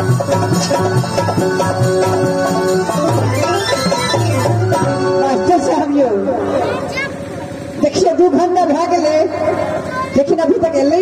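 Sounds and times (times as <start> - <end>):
instrumental music: 0.0 - 7.6.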